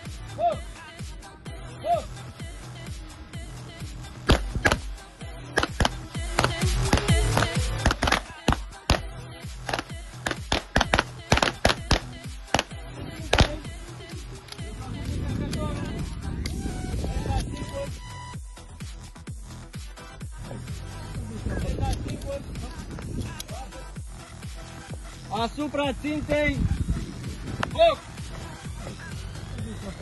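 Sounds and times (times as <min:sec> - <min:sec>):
background music: 0:00.0 - 0:30.0
pistol shots: 0:09.7 - 0:12.7.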